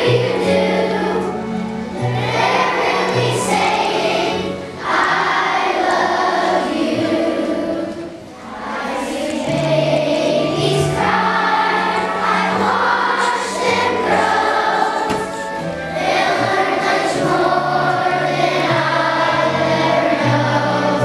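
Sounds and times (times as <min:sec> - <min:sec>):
children's choir singing: 0:00.0 - 0:21.0.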